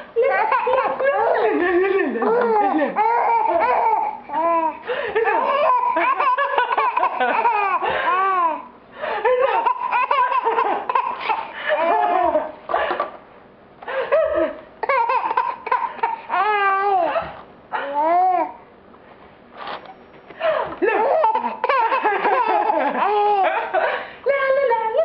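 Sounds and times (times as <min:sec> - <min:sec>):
baby giggling: 0:00.2 - 0:08.7, 0:09.3 - 0:12.6, 0:14.2 - 0:18.5, 0:20.8 - 0:23.7.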